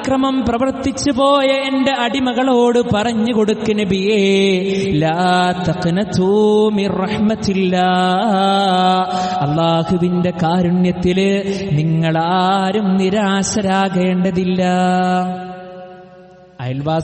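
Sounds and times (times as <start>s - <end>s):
man chanting melodic recitation: 0.0s - 16.0s, 16.6s - 17.0s.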